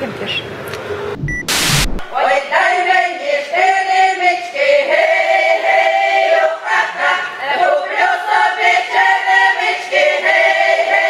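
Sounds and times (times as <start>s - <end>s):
women's choir singing folk song: 2.0s - 11.0s.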